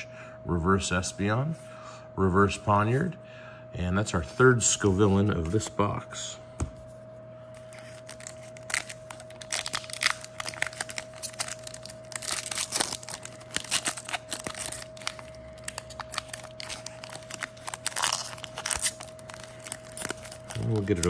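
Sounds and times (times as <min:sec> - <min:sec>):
foil wrapper crinkling: 0:07.6 - 0:21.0
foil tearing open: 0:07.8 - 0:21.0.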